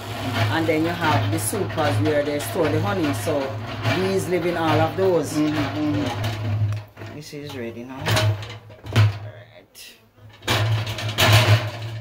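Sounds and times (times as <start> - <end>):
wooden frame scraping metal: 0.0 - 9.5, 10.2 - 12.0.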